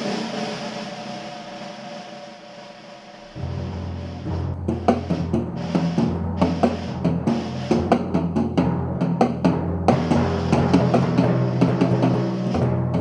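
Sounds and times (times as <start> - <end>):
snare drum strokes: 0.0 - 13.0
timpani ringing low: 3.3 - 13.0.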